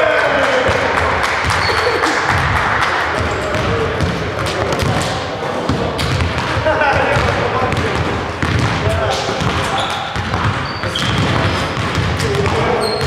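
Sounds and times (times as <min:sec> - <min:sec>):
echoing hum of voices: 0:00.0 - 0:13.0
basketball bouncing on hardwood floor: 0:03.2 - 0:05.1, 0:05.7 - 0:13.0.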